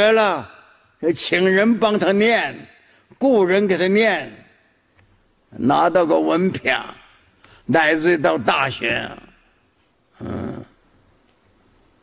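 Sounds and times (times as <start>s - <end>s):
old man's rough throat sound: 10.1s - 10.8s.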